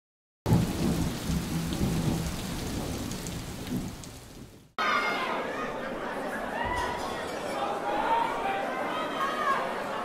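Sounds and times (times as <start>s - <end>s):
low thunder rumbling: 0.5s - 4.6s
heavy rain hissing: 0.5s - 4.7s.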